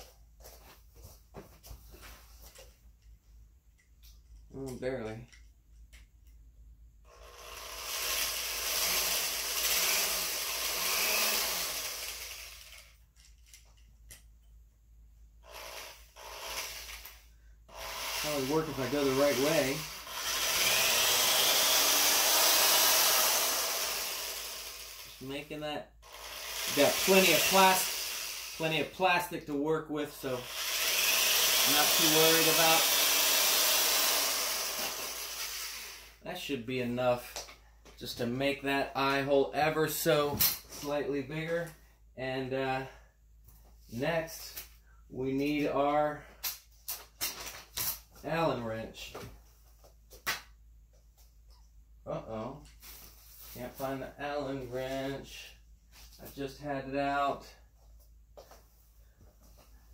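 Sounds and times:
power drill boring plastic: 7.1s - 13.0s, 15.4s - 25.3s, 26.0s - 28.9s, 30.3s - 36.2s.

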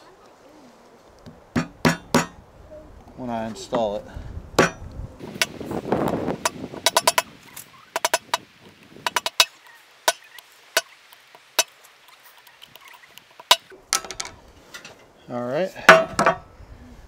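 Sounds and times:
hammer tapping on metal: 1.6s - 2.4s, 4.6s - 4.8s, 6.4s - 7.3s, 8.0s - 8.4s, 9.0s - 9.5s.

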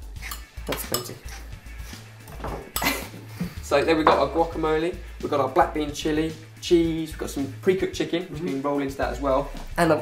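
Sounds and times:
fork scraping ceramic bowl: 0.0s - 2.1s
background music: 0.0s - 10.0s.

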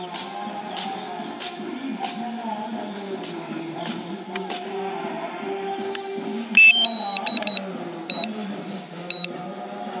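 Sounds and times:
short high electronic beeps: 6.6s - 8.3s.

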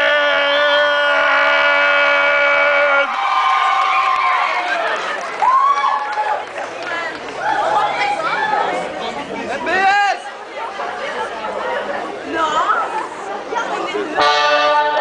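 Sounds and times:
voices chattering and calling out: 6.2s - 15.0s.

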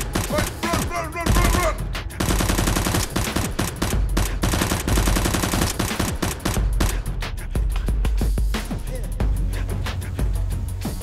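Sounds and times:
rapid automatic gunfire: 0.0s - 7.1s.

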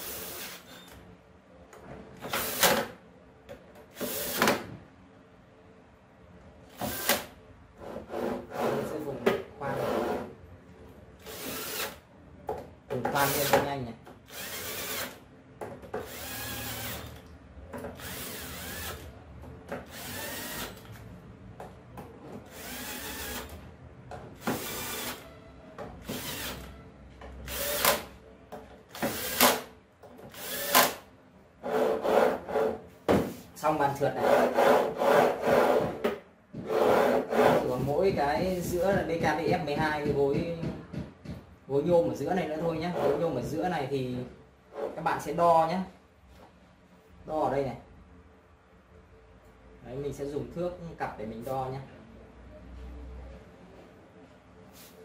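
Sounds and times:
cordless drill driving screws: 0.0s - 0.9s, 2.3s - 2.8s, 6.8s - 7.3s, 11.2s - 12.0s, 14.3s - 15.2s, 16.0s - 17.2s, 18.0s - 19.0s, 19.8s - 20.9s, 22.5s - 23.5s, 24.4s - 25.2s, 26.0s - 26.7s, 27.5s - 28.1s, 28.9s - 29.7s, 30.3s - 31.0s.

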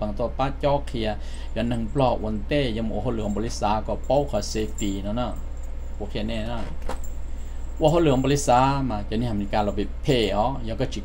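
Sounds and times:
man speaking: 0.0s - 5.4s, 6.0s - 6.8s, 7.8s - 11.0s
steady low hum: 0.0s - 11.0s
metallic jingle of coins: 3.1s - 8.9s.

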